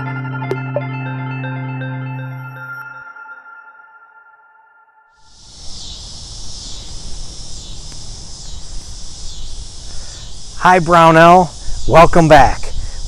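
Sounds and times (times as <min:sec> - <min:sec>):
synthesizer jingle: 0:00.0 - 0:05.1
pulsing insect chorus: 0:05.2 - 0:13.0.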